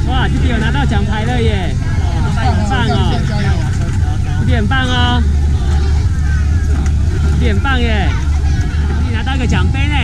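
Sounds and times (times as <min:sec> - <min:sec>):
low rumble: 0:00.0 - 0:10.0
people talking: 0:00.0 - 0:10.0.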